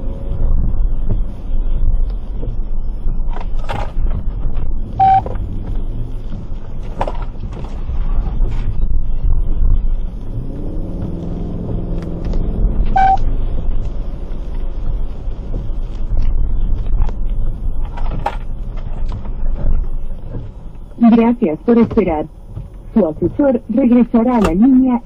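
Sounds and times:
car driving rumble: 0.0s - 25.0s
short beep: 5.0s - 5.3s, 12.9s - 13.3s.

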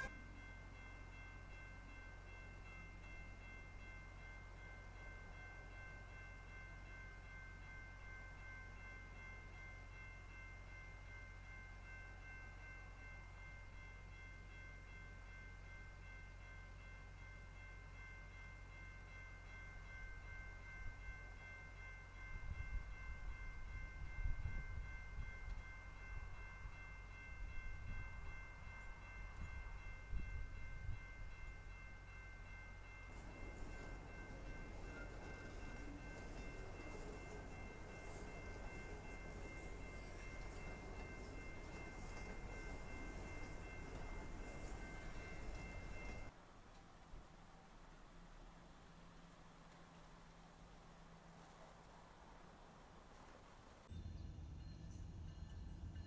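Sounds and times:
level crossing warning bell: 0.0s - 46.4s.

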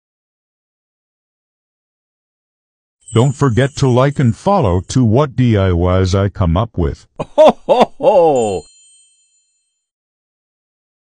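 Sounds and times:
high bell-like ring: 3.0s - 5.0s, 8.2s - 9.9s.

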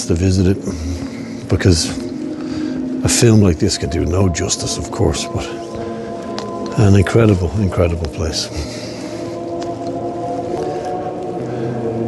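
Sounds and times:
slow music of held chords: 0.0s - 12.0s.

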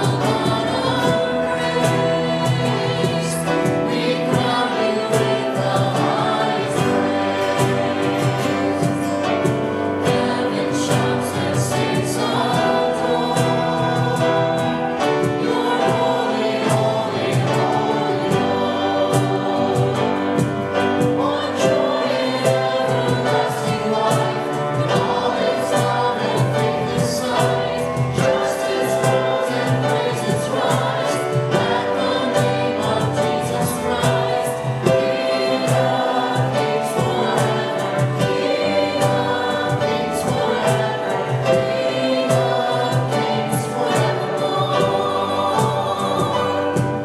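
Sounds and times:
acoustic guitar: 0.0s - 47.0s
cajon beat: 0.0s - 47.0s
keyboard: 0.0s - 47.0s
people singing a hymn: 0.0s - 47.0s.

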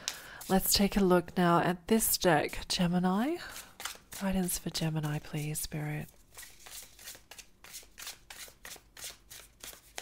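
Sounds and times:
cards being shuffled: 3.8s - 4.2s, 6.1s - 10.0s.

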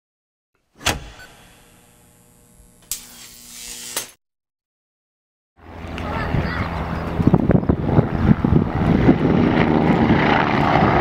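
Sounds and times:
sharp hits: 0.8s - 2.1s
humming electronic drone: 0.8s - 4.1s.

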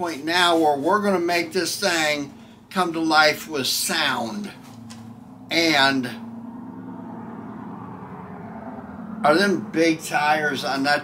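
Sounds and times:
road rumble: 0.0s - 11.0s
truck engine: 0.8s - 11.0s.

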